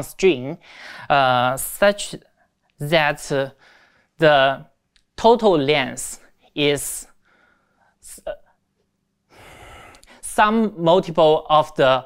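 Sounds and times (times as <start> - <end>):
man breathing in: 7.2 - 8.0, 9.3 - 10.2.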